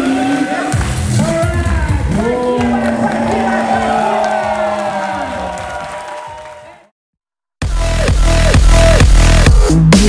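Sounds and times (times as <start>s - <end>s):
electronic dance music: 0.0s - 6.8s, 7.6s - 10.0s
crowd cheering and shouting: 0.0s - 6.9s.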